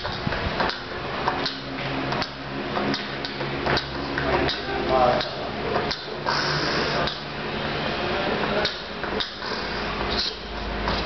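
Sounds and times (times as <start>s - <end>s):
boy beatboxing: 0.0s - 7.4s, 8.4s - 11.0s.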